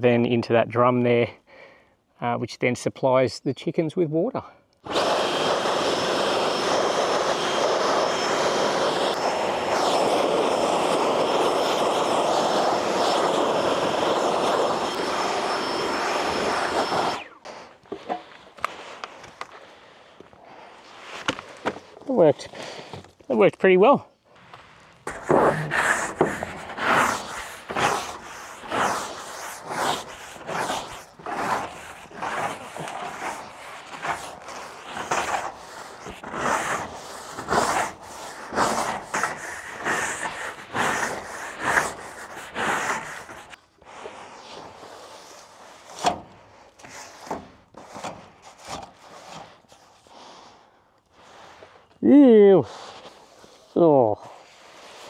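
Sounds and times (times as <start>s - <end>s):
broom sweeping metal roof: 4.9s - 23.0s, 24.4s - 55.0s.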